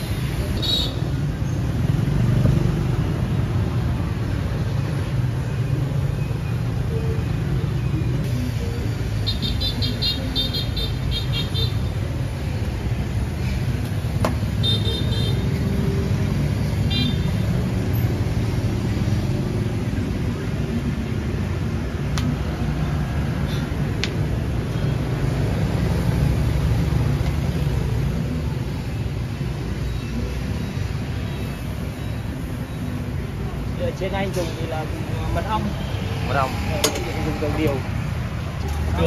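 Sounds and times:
street traffic rumble: 0.0s - 39.0s.

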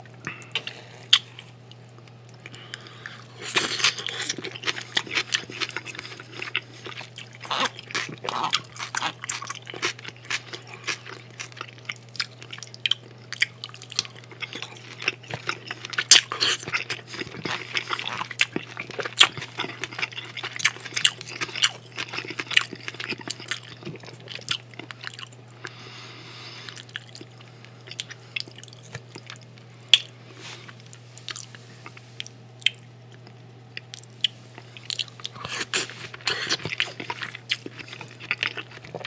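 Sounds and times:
wet chewing of soft food: 0.0s - 39.0s.

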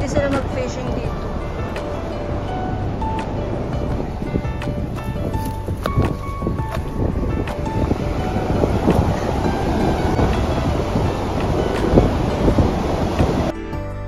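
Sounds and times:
wind on microphone: 0.0s - 13.6s
background music: 0.0s - 14.0s.

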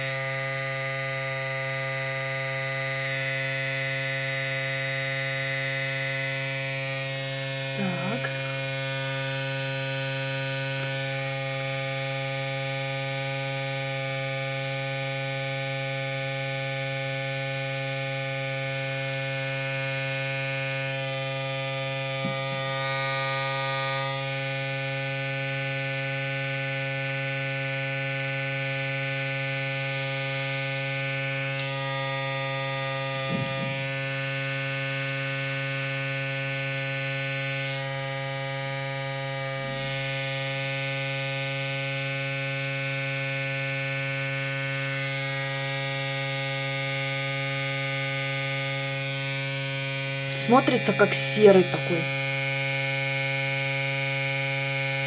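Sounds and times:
airbrush compressor humming: 0.0s - 55.0s.

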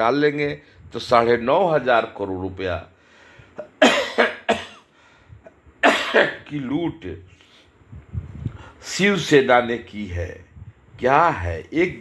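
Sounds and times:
man coughing: 3.6s - 6.5s.

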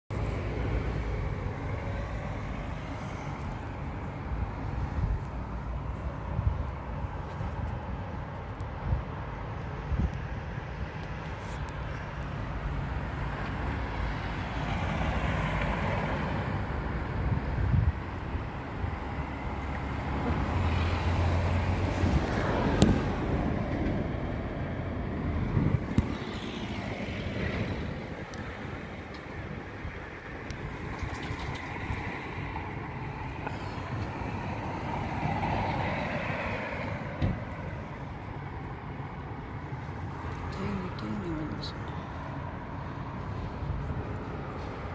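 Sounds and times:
road traffic passing: 0.1s - 44.9s.

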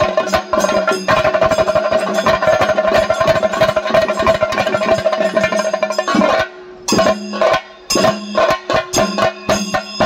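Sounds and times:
fast dense drumming: 0.0s - 10.0s.

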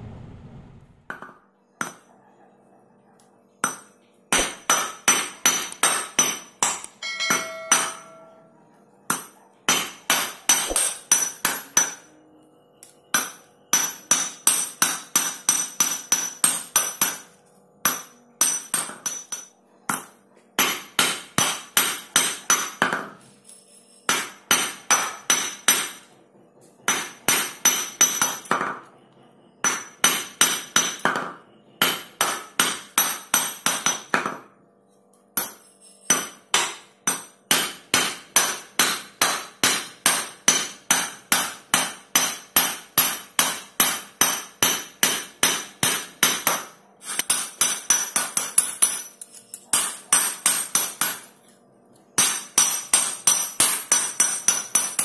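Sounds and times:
hammer striking metal on anvil: 1.1s - 2.1s, 3.6s - 12.2s, 13.1s - 23.2s, 24.1s - 26.1s, 26.9s - 28.9s, 29.6s - 34.5s, 35.4s - 51.4s, 52.2s - 55.0s.

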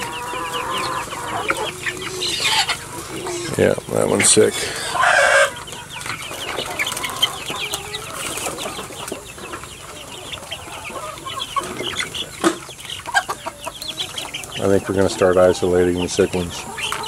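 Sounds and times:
young chickens peeping and clucking: 0.0s - 17.0s.

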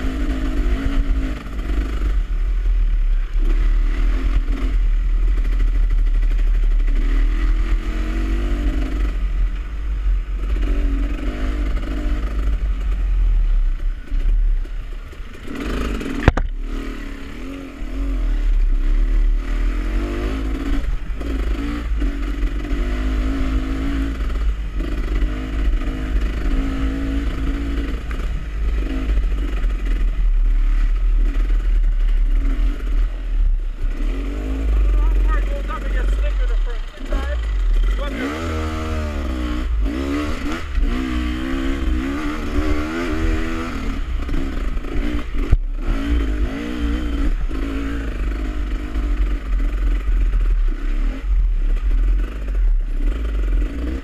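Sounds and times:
dirt bike engine revving: 0.0s - 54.0s
sharp knock: 16.2s - 16.6s.

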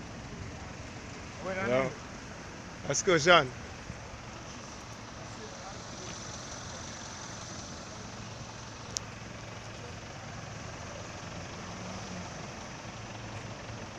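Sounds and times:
minibus engines humming: 0.0s - 13.9s
street noise: 0.0s - 13.9s.

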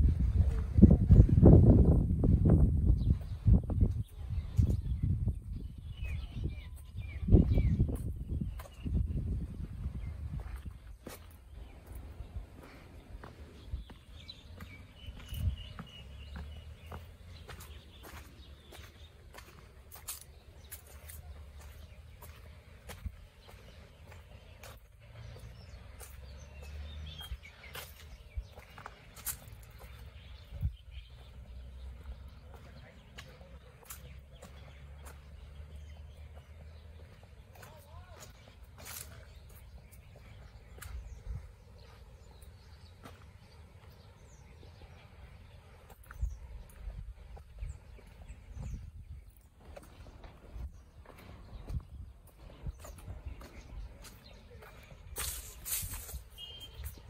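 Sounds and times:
wind rumble on microphone: 0.0s - 19.6s, 21.6s - 32.8s, 39.4s - 43.2s, 43.8s - 57.0s
soft footsteps: 6.8s - 57.0s.

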